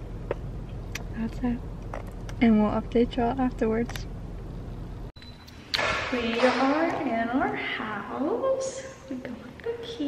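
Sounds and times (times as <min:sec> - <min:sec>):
low rumble inside car: 0:00.0 - 0:05.1
woman speaking: 0:01.1 - 0:01.6, 0:02.4 - 0:04.0, 0:06.0 - 0:10.0.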